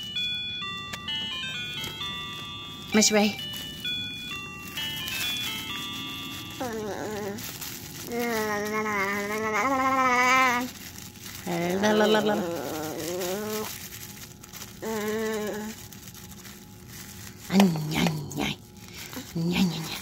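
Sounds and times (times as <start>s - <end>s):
plastic bag crinkling: 0.0s - 20.0s.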